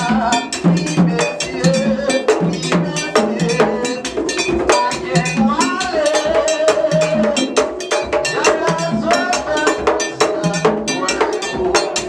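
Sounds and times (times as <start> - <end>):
fast drum beat: 0.0 - 12.0
voices singing: 0.0 - 12.0.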